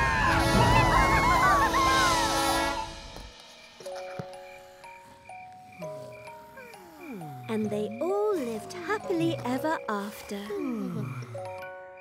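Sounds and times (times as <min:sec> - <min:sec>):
high gliding whoops: 0:00.0 - 0:03.1
low rumbling rocket roar: 0:00.0 - 0:03.2
quiet music with held notes: 0:02.2 - 0:12.0.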